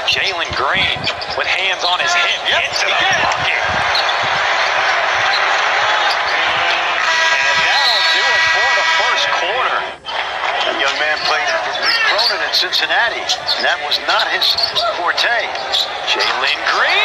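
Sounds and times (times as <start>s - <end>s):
crowd noise: 0.0s - 17.0s
sneaker squeaks: 0.9s - 1.9s, 3.8s - 6.5s, 13.3s - 14.9s, 15.5s - 16.4s
arena horn chord: 7.0s - 9.4s.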